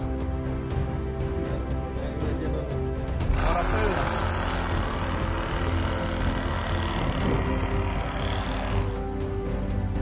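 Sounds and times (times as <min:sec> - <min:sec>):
electric saw cutting carcass: 0:03.3 - 0:09.0.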